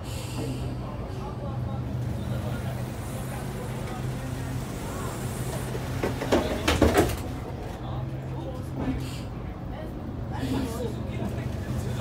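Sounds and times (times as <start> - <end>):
bus diesel engine drone: 0.0 - 12.0.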